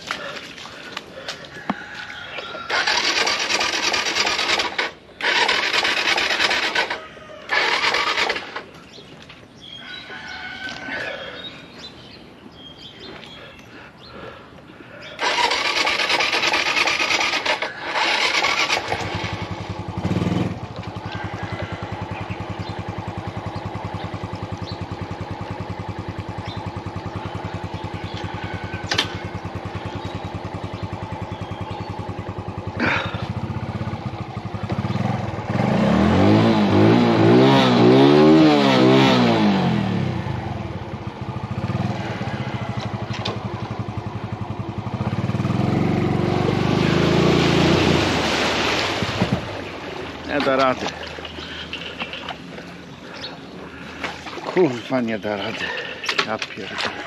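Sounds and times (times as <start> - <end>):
scooter engine idling and revving: 0.0 - 57.0.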